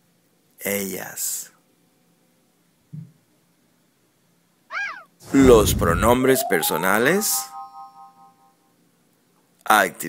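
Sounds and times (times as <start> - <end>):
high animal-like call: 4.7 - 5.2.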